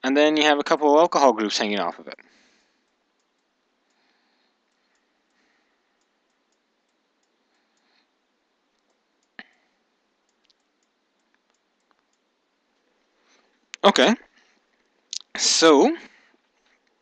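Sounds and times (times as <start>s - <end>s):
faint clicks: 2.8s - 8.0s, 8.7s - 13.8s.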